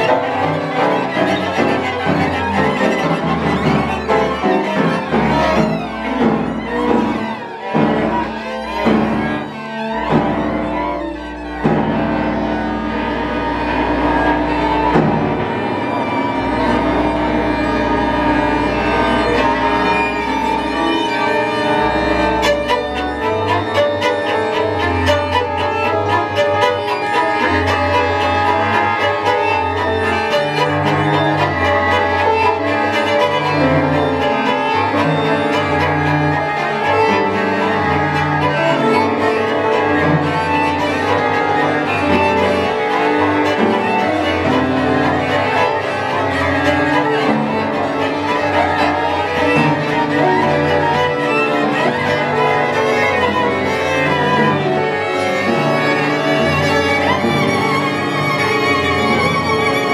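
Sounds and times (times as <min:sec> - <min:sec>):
cello long low notes: 0:00.0 - 0:59.9
violin and viola lines: 0:00.0 - 0:59.9.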